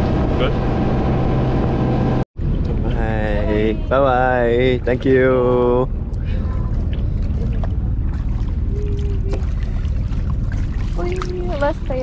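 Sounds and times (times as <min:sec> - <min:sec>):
boat engine rumble: 0:00.0 - 0:12.0
water noise: 0:00.0 - 0:12.0
wind: 0:00.0 - 0:12.0.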